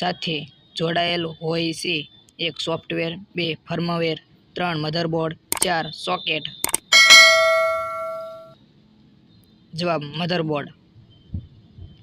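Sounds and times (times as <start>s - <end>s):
bright bell chime: 6.7s - 8.5s.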